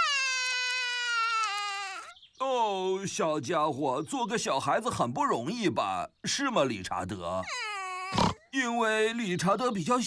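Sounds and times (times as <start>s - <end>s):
cartoon child crying: 0.0s - 2.2s, 7.5s - 8.2s.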